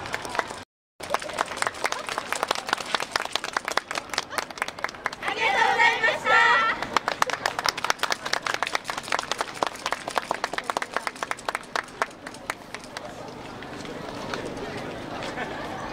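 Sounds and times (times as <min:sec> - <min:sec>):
audience clapping: 0:00.0 - 0:05.3, 0:06.8 - 0:13.2.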